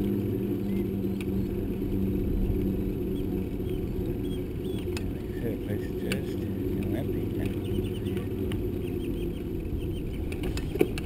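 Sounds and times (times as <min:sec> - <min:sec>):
bicycle rolling on asphalt: 0:00.0 - 0:11.0.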